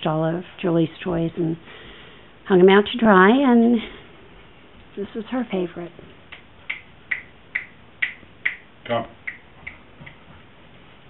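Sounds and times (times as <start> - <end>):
fingers snapping: 6.3 - 8.6, 9.3 - 10.2.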